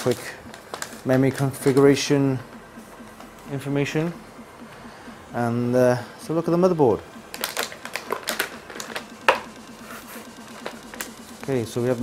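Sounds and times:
plastic bag crinkling: 7.3 - 9.1.

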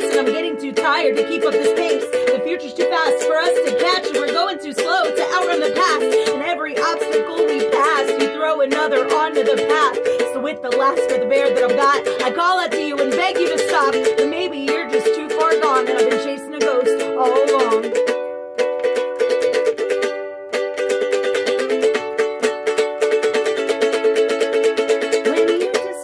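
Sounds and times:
person singing: 0.0 - 18.2, 21.1 - 26.0
ukulele strumming: 0.0 - 26.0.

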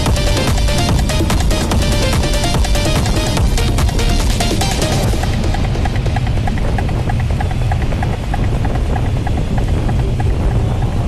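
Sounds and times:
faint electronic music: 0.0 - 11.0
wind buffeting microphone: 0.0 - 11.0.

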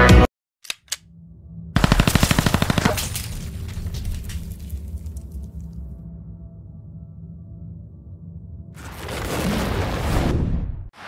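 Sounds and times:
machine-gun burst: 1.8 - 3.5.

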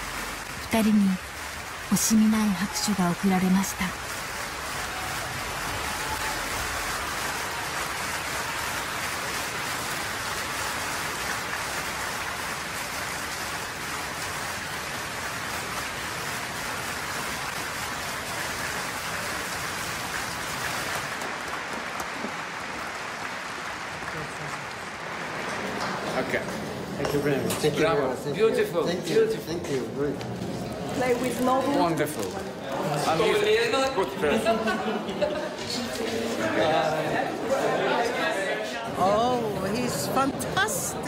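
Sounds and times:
audience applauding: 0.0 - 28.6.

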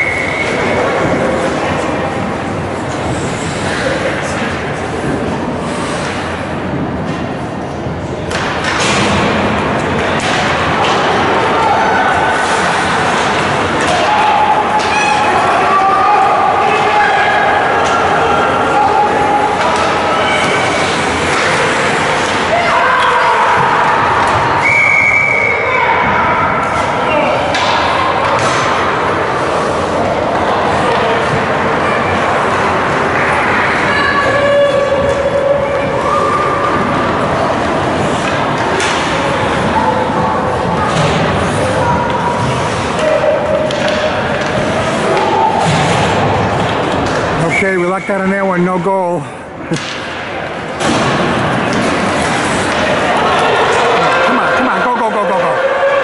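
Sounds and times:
spectators shouting and cheering: 8.8 - 56.0.

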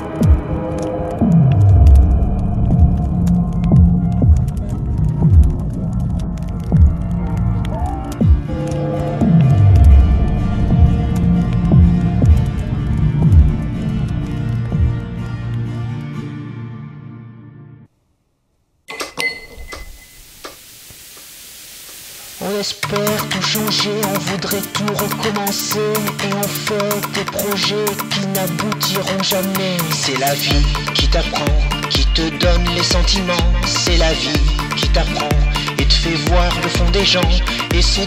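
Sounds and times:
faint scattered crackles: 0.0 - 16.3, 18.9 - 38.0
low droning hum: 0.2 - 15.6
faint steady hiss: 18.5 - 23.7.

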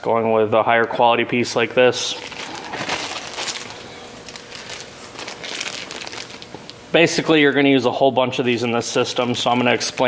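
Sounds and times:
plastic bag crinkling: 2.1 - 6.8, 9.4 - 10.0.

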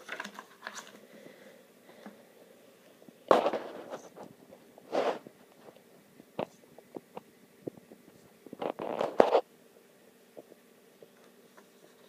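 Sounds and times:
book pages rustling: 0.0 - 1.1, 8.1 - 9.4.

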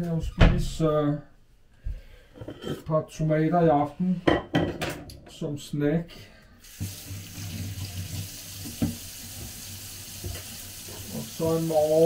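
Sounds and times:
water running into metal sink: 6.6 - 12.0.

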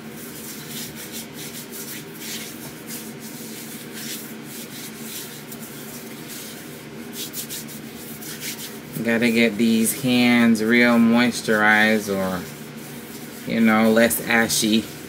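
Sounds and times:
faint steady hum: 0.0 - 15.0
hands rubbing together: 0.1 - 9.1, 9.8 - 15.0.

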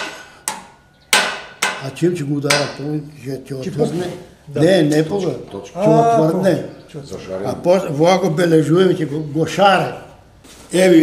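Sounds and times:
hammer striking copper sheet: 0.0 - 2.8.

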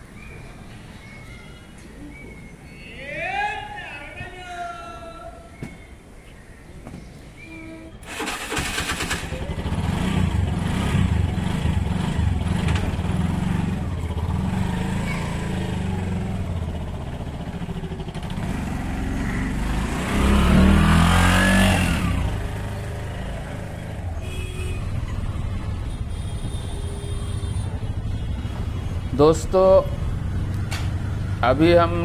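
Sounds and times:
auto-rickshaw engine puttering: 8.0 - 32.0.

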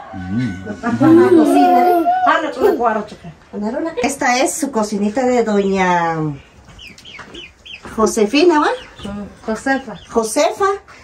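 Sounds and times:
chicken calls: 0.0 - 3.2.

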